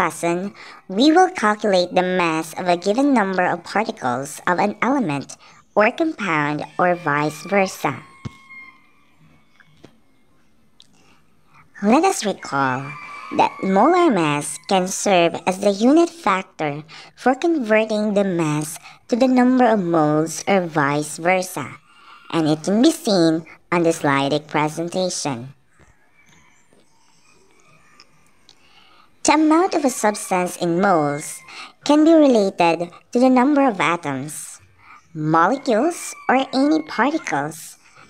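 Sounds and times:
woman speaking: 0:00.0 - 0:08.2, 0:11.8 - 0:25.6, 0:29.2 - 0:37.8
faint background noise: 0:00.0 - 0:38.0.

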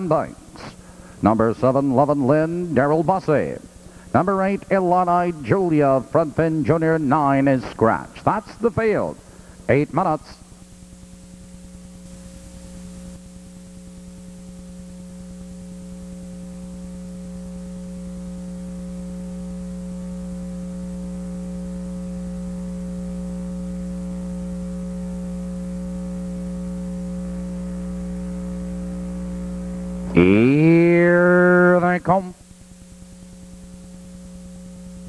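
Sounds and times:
electrical mains hum: 0:00.0 - 0:35.0.

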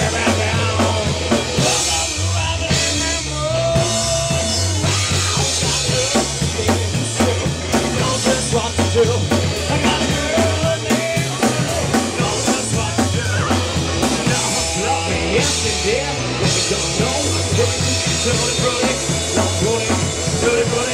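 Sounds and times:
bass: 0:00.0 - 0:20.9
drum kit: 0:00.0 - 0:20.9
electric guitar: 0:00.0 - 0:20.9.

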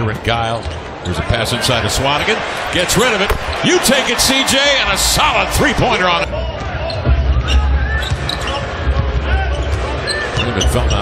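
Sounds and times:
arena crowd noise: 0:00.0 - 0:11.0
basketball dribbling on hardwood: 0:03.3 - 0:03.6.

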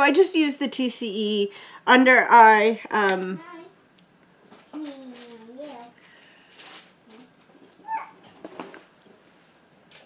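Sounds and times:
faint room sounds: 0:00.0 - 0:10.0.

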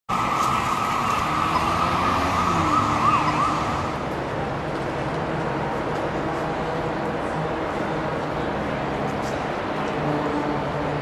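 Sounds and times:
emergency vehicle siren: 0:00.1 - 0:04.2.

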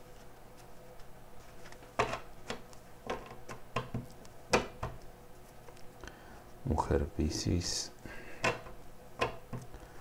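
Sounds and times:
cards being shuffled: 0:00.0 - 0:05.9.

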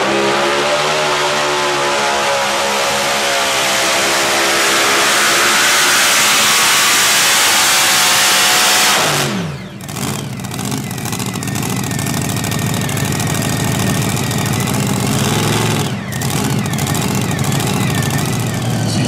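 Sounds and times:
tractor engine revving then idling: 0:00.0 - 0:19.0.

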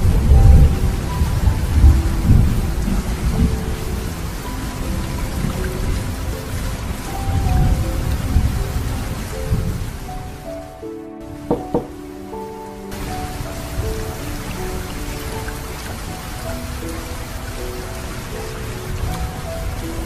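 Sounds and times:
deep rolling thunder: 0:00.0 - 0:10.5
heavy rain: 0:00.0 - 0:20.0.

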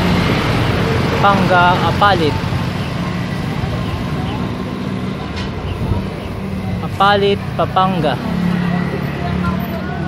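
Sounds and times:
vehicle engines humming: 0:00.0 - 0:10.0
faint voices: 0:01.0 - 0:10.0.

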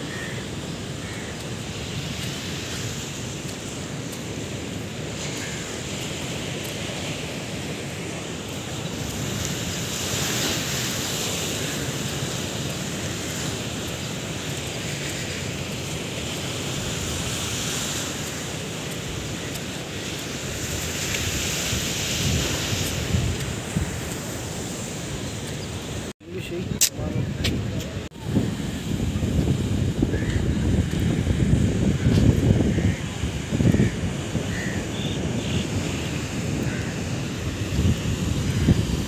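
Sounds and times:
surf washing against shore: 0:00.0 - 0:39.0
wind rumbling on microphone: 0:15.4 - 0:39.0.

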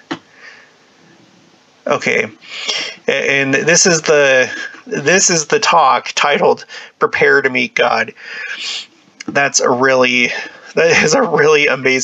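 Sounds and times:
person sniffing: 0:02.4 - 0:03.1, 0:08.2 - 0:08.9.

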